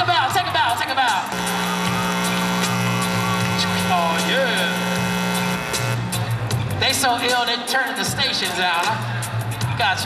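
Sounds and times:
sustained chord with bass note: 0:01.3 - 0:06.3.

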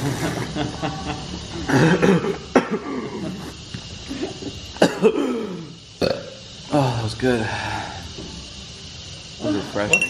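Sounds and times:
laughter: 0:00.0 - 0:03.5
man coughing: 0:01.8 - 0:03.2, 0:04.8 - 0:05.7.

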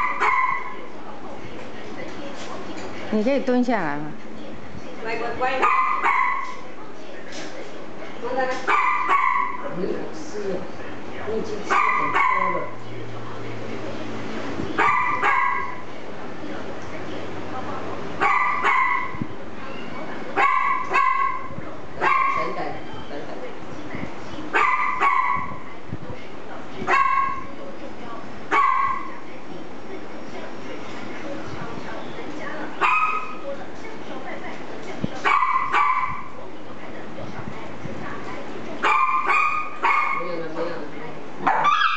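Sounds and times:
dog barking: 0:00.0 - 0:00.8, 0:05.6 - 0:06.6, 0:08.6 - 0:09.7, 0:11.7 - 0:12.8, 0:14.8 - 0:15.8, 0:18.2 - 0:19.2, 0:20.4 - 0:22.6, 0:24.5 - 0:25.6, 0:26.8 - 0:27.5, 0:28.5 - 0:29.1, 0:32.8 - 0:33.4, 0:35.2 - 0:36.4, 0:38.8 - 0:40.3, 0:41.4 - 0:41.9.

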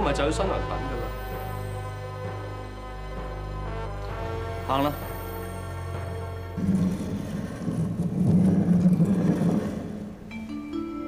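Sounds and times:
music with sustained notes: 0:00.0 - 0:11.0.

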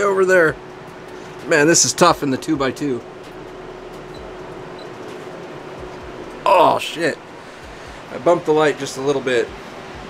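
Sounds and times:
faint constant hum: 0:00.0 - 0:10.0
steady hiss: 0:00.0 - 0:10.0.

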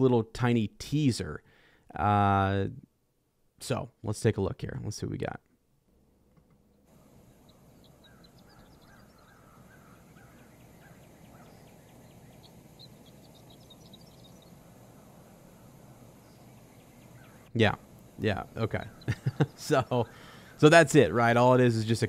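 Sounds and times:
steady low hiss: 0:00.0 - 0:22.0
birds chirping: 0:06.6 - 0:22.0.

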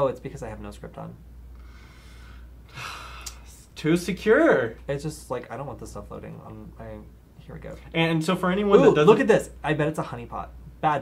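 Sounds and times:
man exhaling breathily: 0:01.6 - 0:03.6
man speaking: 0:03.4 - 0:11.0.

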